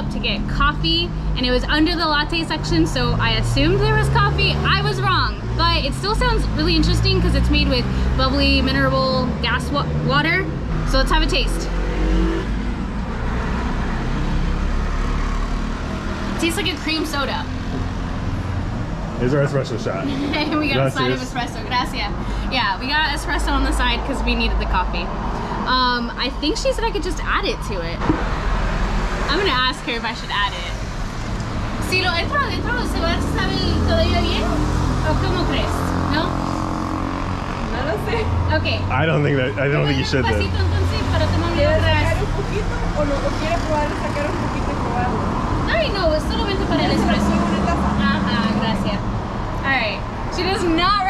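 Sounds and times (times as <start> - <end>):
traffic noise: 0.0 - 51.0
vehicle engine rumbling: 0.0 - 51.0
person talking: 19.2 - 23.5, 37.8 - 44.1.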